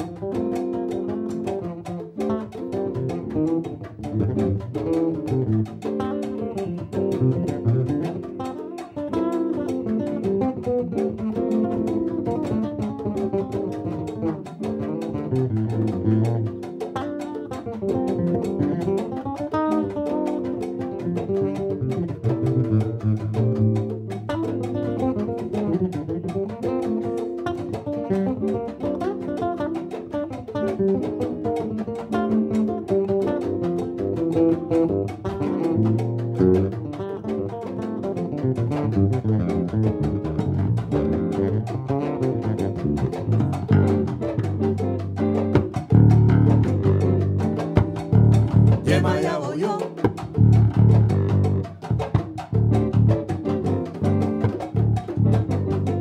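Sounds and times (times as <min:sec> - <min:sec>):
electric bass solo: 0:00.0 - 0:56.0.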